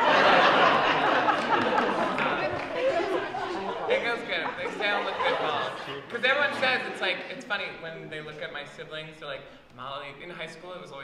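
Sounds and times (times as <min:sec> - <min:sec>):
overlapping voices talking: 0:00.0 - 0:07.6.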